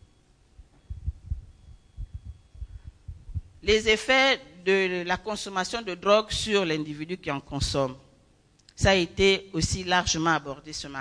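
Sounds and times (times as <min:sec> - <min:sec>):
microphone handling thumps: 0:00.6 - 0:03.6.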